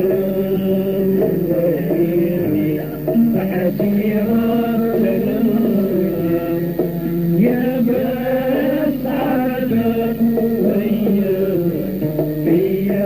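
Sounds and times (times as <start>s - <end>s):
instrumental accompaniment: 0.0s - 13.0s
man singing wavering vocal line: 0.0s - 13.0s.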